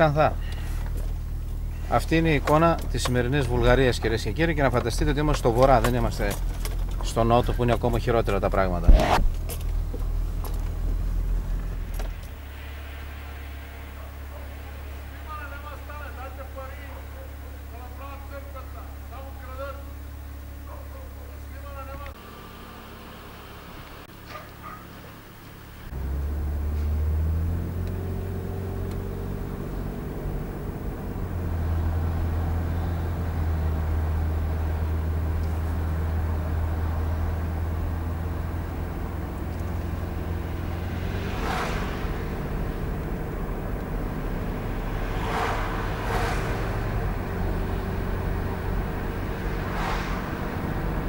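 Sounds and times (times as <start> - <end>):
car engine running: 0.0 - 51.0.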